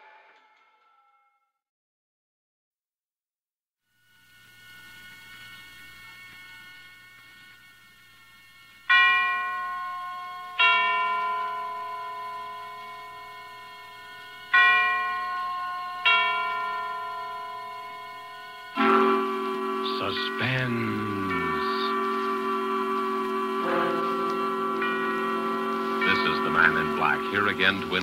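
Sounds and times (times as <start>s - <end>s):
faint held tone: 4.2s - 28.0s
struck chimes ringing: 8.4s - 28.0s.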